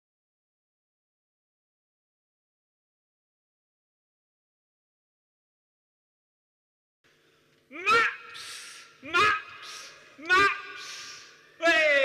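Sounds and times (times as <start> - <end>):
man shouting: 7.7 - 12.0.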